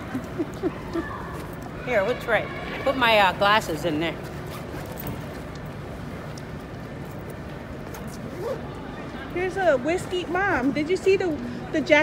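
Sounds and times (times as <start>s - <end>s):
city background noise: 0.0s - 12.0s
indistinct chatter: 0.0s - 12.0s.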